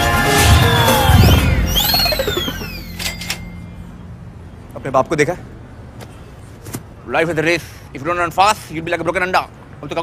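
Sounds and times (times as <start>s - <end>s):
falling whistle glide: 0.4s - 3.2s.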